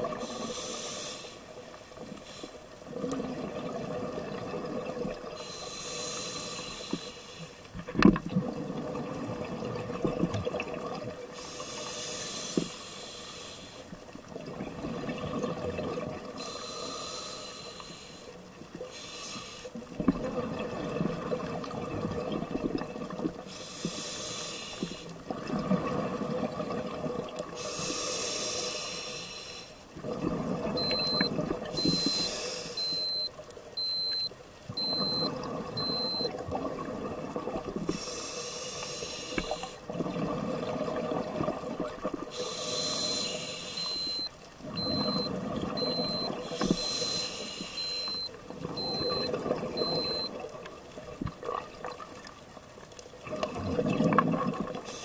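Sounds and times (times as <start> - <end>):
hissing regulator inhale: 0.2 - 1.5, 5.4 - 7.6, 11.4 - 13.9, 16.4 - 19.8, 23.5 - 25.2, 27.6 - 29.9, 30.8 - 36.3, 37.9 - 39.8, 42.3 - 48.3
exhaled bubbles rumbling: 2.9 - 5.4, 7.9 - 11.2, 14.3 - 16.3, 19.9 - 23.4, 25.3 - 27.6, 30.0 - 32.2, 33.8 - 37.9, 39.9 - 42.3, 48.4 - 52.2, 53.2 - 54.9
high electronic beep: 30.8 - 36.3, 43.8 - 50.3.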